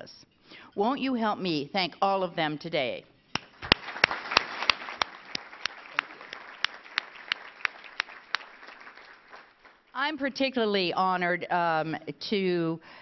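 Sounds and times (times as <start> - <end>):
hands clapping sharply close: 3.3 - 9.8
audience applauding: 3.4 - 9.8.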